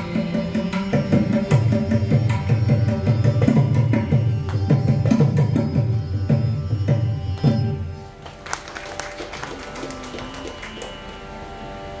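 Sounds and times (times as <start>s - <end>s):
electronic tanpura drone: 0.0s - 12.0s
audience applause: 8.2s - 11.3s.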